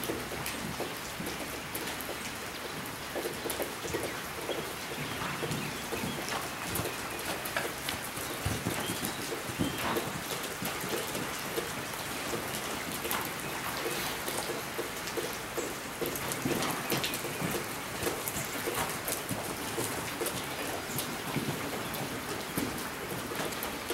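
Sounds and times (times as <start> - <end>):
rain on a metal roof: 0.0 - 23.9.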